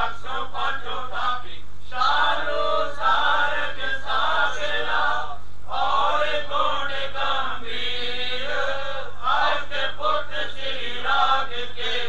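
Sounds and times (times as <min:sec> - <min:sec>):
voices chanting a hymn: 0:00.0 - 0:12.0.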